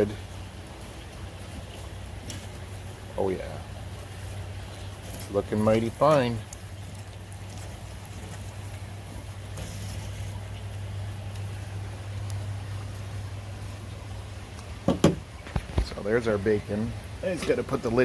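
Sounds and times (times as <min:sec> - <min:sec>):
steady low hum: 0:00.0 - 0:17.9.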